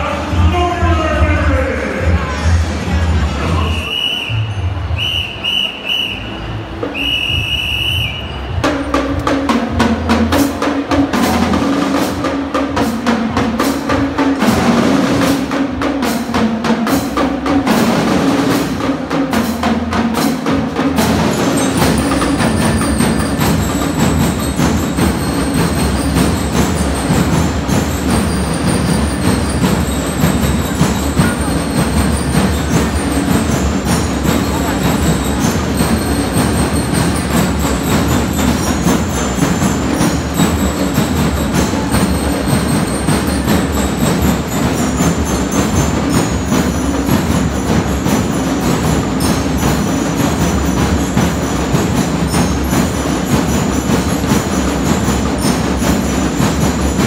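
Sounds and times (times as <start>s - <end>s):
marching drums: 0.0s - 57.0s
high bell-like melody: 21.1s - 57.0s.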